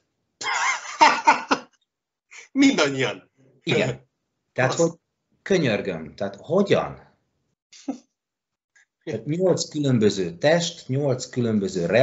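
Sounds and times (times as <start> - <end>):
man laughing: 0.4 - 1.6.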